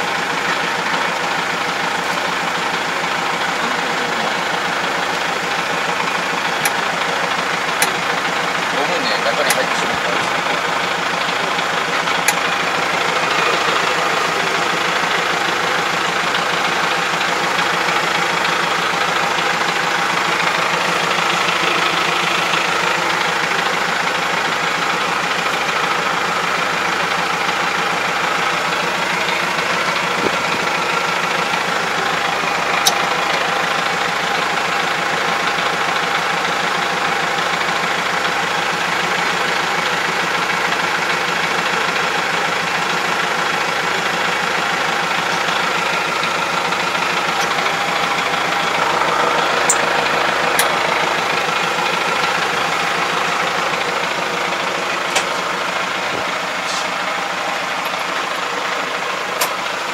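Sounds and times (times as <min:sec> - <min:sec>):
tractor diesel engine idling: 0:00.0 - 0:59.9.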